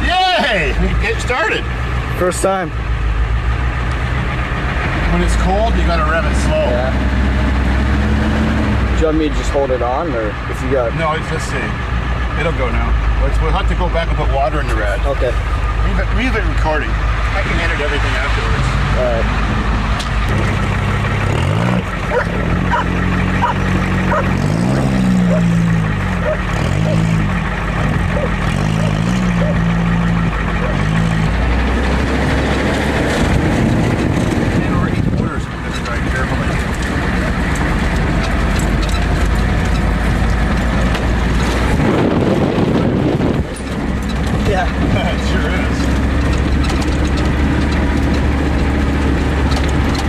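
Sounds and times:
truck engine revving and idling: 0.0s - 50.0s.

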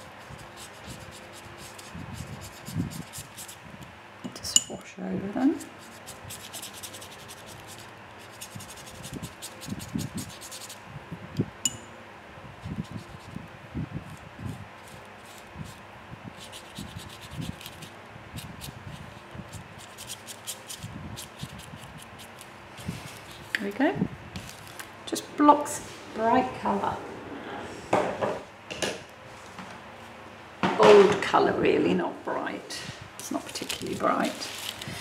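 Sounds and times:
paintbrush scratching on paper: 0.2s - 3.6s, 5.6s - 10.8s
light clink: 11.6s - 12.0s.

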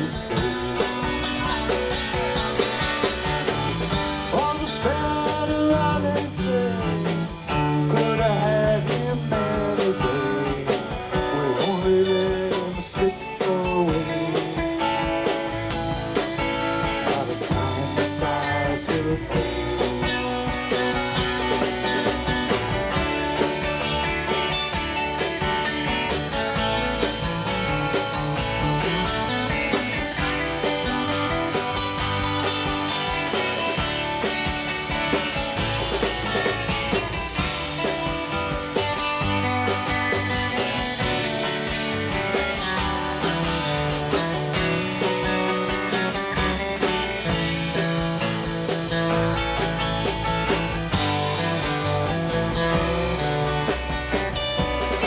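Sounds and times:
drum kit: 0.0s - 55.0s
electric and acoustic guitars: 0.0s - 55.0s
upright bass: 0.0s - 55.0s.

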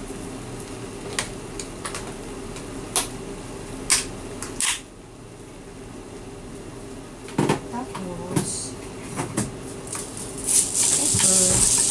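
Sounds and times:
steady hum: 0.0s - 11.9s
food simmering in a frying pan: 9.7s - 11.9s
sharp crackles and pops: 9.8s - 11.9s.

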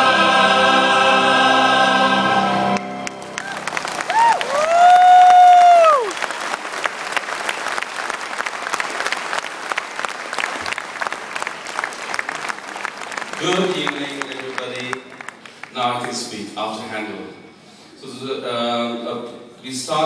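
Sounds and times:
audience applauding: 2.8s - 16.4s.

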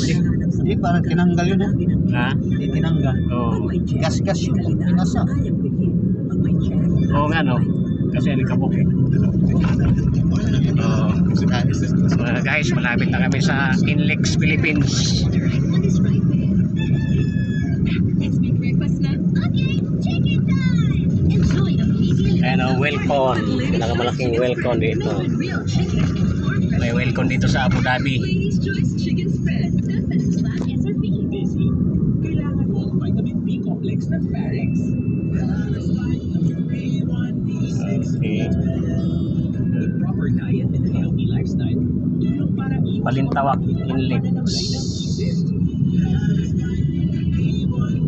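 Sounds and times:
car engine and tyre rumble: 0.0s - 48.0s
faint voice: 0.0s - 48.0s.

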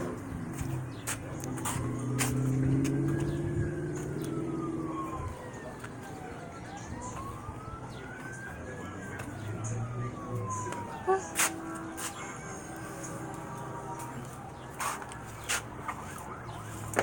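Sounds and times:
emergency siren wailing: 0.0s - 17.0s
low engine drone: 0.0s - 17.0s.

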